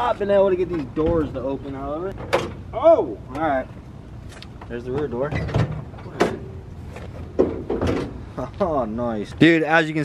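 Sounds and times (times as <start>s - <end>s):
metal car door clunking: 2.2s - 2.6s, 4.9s - 6.6s, 7.2s - 8.2s.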